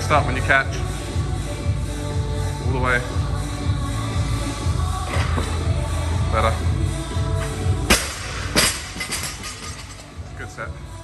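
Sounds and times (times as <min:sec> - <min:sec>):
loud gym music: 0:00.0 - 0:11.0.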